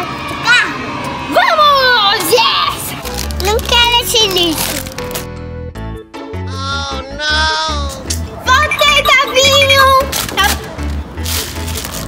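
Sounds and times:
child speaking: 0:01.4 - 0:04.8, 0:07.3 - 0:10.5
background music: 0:01.9 - 0:12.0.

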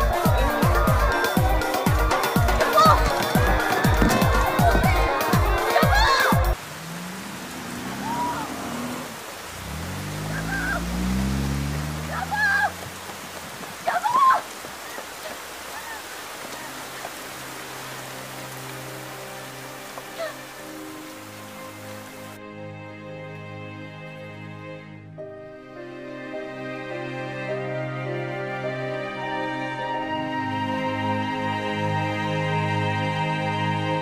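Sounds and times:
rain falling on pavement: 0:00.0 - 0:22.4
woman shouting in distance: 0:02.7 - 0:03.0, 0:08.0 - 0:08.6, 0:10.4 - 0:10.9, 0:12.1 - 0:12.8, 0:13.8 - 0:14.5
soft sad music: 0:16.4 - 0:34.0.

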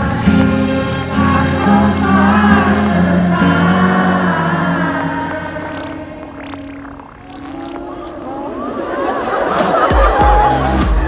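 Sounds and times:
crowd noise: 0:00.0 - 0:11.0
live concert music: 0:00.0 - 0:11.0
high sweeping tones: 0:01.0 - 0:09.9.

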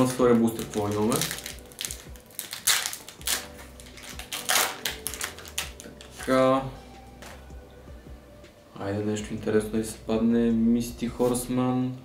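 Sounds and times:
foil wrapper tearing and crinkling: 0:00.0 - 0:06.4.

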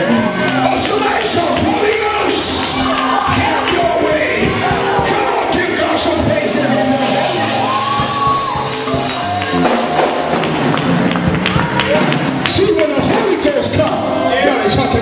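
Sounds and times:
voices singing and shouting: 0:00.0 - 0:09.6.

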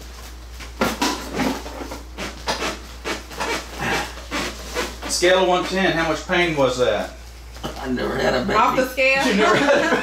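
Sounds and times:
man breathing hard: 0:03.7 - 0:04.5.

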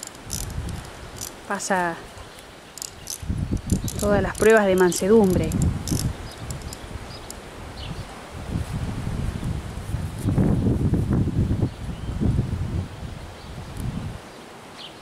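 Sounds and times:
wind rumbling on microphone: 0:00.0 - 0:14.4.

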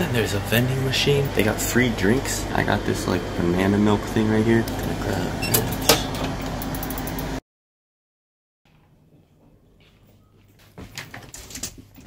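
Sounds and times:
vending machine humming and rushing: 0:00.0 - 0:07.4.

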